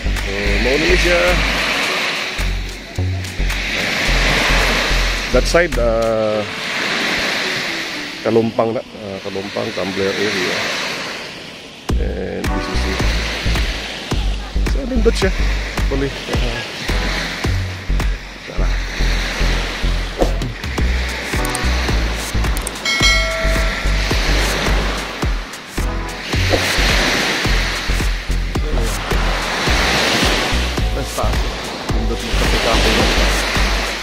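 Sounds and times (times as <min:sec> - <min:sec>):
surf washing onto beach: 0:00.0 - 0:34.0
wind rumbling on microphone: 0:10.2 - 0:34.0
short pitched chime: 0:22.8 - 0:24.9.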